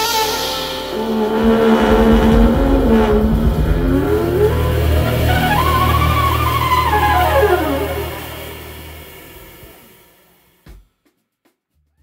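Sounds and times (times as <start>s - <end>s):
trumpet sliding note: 0.0s - 9.8s
electric bass: 0.0s - 10.1s
drums: 0.0s - 12.0s.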